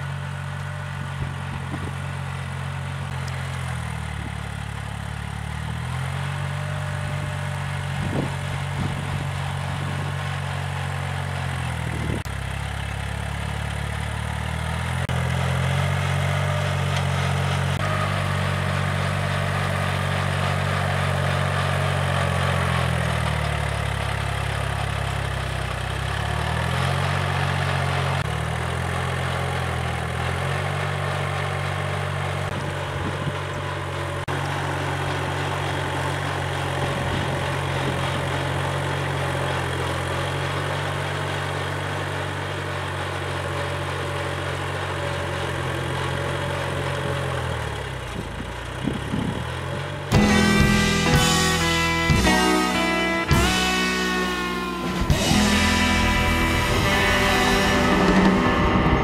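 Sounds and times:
tractor diesel engine under load: 0.0 - 59.0.

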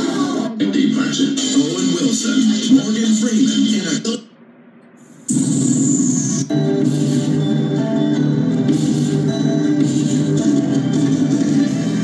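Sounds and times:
music from a speaker: 6.5 - 12.0.

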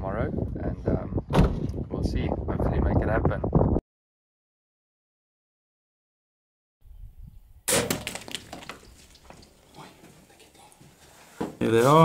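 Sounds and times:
loud crack: 7.7 - 8.8
water splashing: 7.7 - 10.5.

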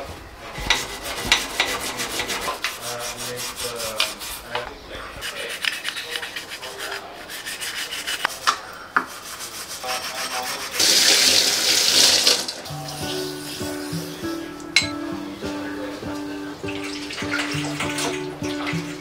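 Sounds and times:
stiff brush scrubbing metal: 0.0 - 11.8
running splashing water: 10.5 - 14.9, 16.1 - 19.0.

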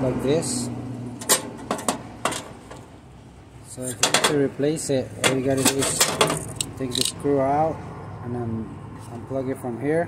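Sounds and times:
clicks and taps on sheet metal: 1.2 - 2.8, 4.0 - 4.4, 5.2 - 7.1.

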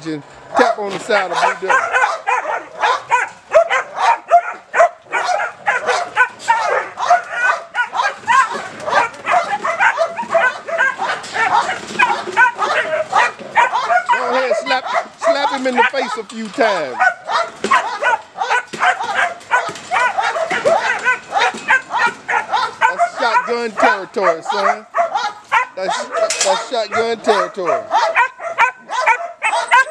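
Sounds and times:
puppy barking: 0.5 - 29.9.

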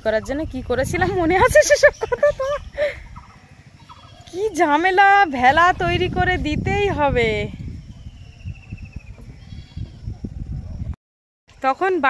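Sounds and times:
low rumbling noise: 4.7 - 11.0.

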